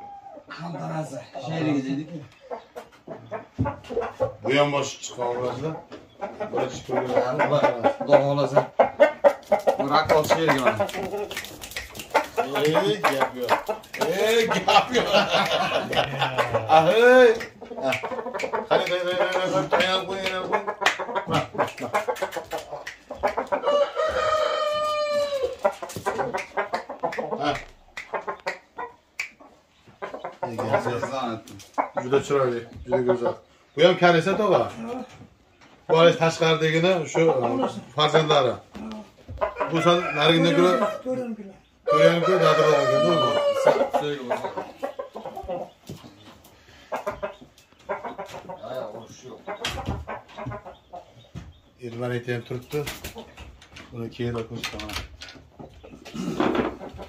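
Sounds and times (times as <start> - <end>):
rooster clucking: 0.0 - 35.2, 35.8 - 51.7, 54.7 - 57.0
rooster crowing: 23.6 - 25.6, 39.5 - 41.3, 41.9 - 43.9.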